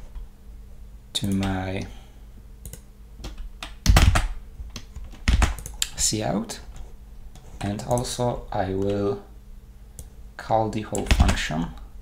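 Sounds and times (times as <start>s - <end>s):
typing on computer keyboard: 2.7s - 5.9s.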